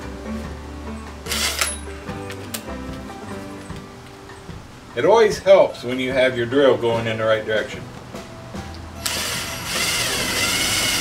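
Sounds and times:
background music: 0.0s - 11.0s
cordless drill running: 1.3s - 1.6s, 9.0s - 11.0s.

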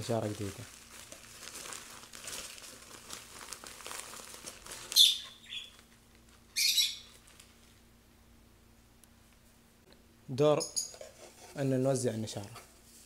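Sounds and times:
wood shavings and plastic bag rustling: 0.0s - 7.8s
caged bird calling: 5.0s - 5.8s, 6.5s - 7.1s.

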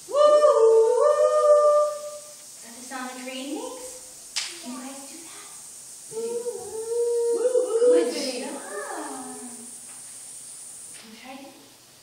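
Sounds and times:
faint room hiss: 0.0s - 12.0s
voice imitating train whistle: 0.1s - 2.3s.

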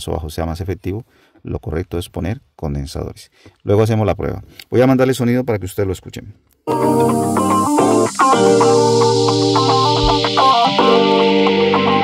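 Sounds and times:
guitar-led music through a woofer: 6.7s - 12.0s.

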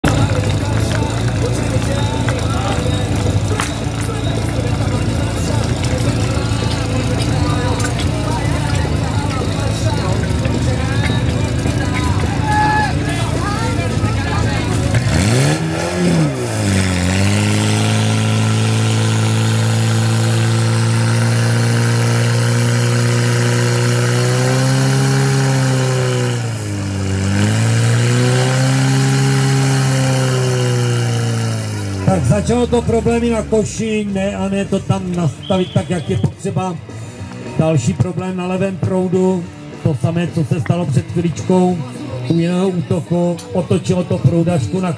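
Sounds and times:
fire pump engine running: 0.0s - 44.9s.

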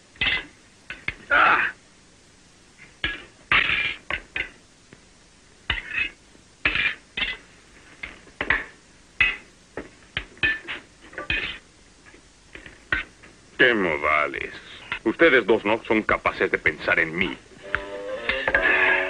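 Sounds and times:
spoons scraping tin plates: 5.7s - 7.5s, 10.4s - 11.6s, 17.6s - 19.0s.

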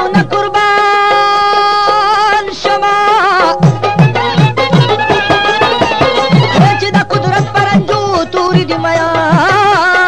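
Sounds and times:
tabla strokes: 0.0s - 10.0s
sustained melodic instrument lines: 3.4s - 7.3s.

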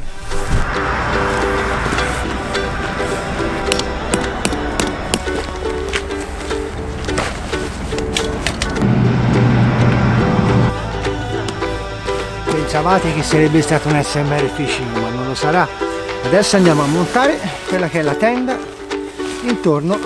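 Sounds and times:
melody over percussion: 0.9s - 13.9s
deep bass note: 8.0s - 12.7s.

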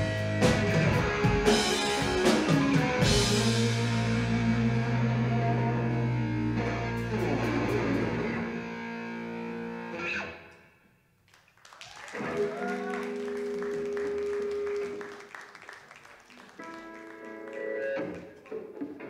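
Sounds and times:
electric guitars through amplifiers: 0.0s - 10.7s, 12.1s - 15.4s, 16.3s - 19.0s.

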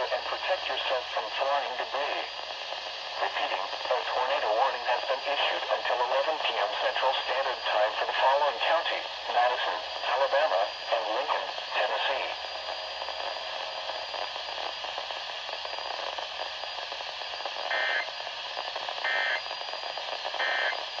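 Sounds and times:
voice over radio speaker: 0.0s - 2.4s, 3.2s - 12.5s
radio hiss: 0.0s - 21.0s
digital data bursts: 17.7s - 18.1s, 19.0s - 19.5s, 20.4s - 20.8s.

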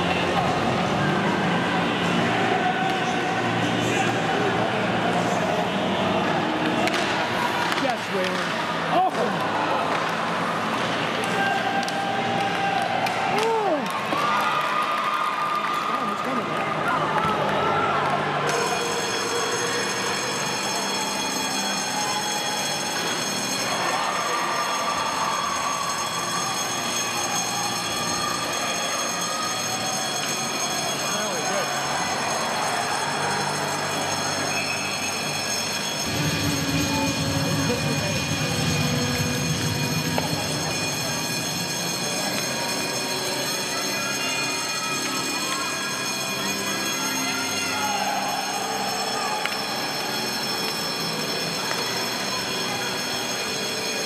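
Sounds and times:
scattered voices: 0.0s - 13.9s, 15.9s - 54.0s
steady high-pitched hum: 33.4s - 43.5s.

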